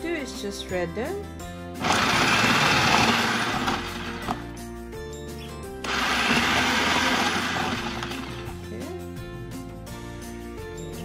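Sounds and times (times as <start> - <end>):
background music: 0.0 - 11.0
food processor grating potatoes: 1.8 - 4.5, 5.8 - 8.6.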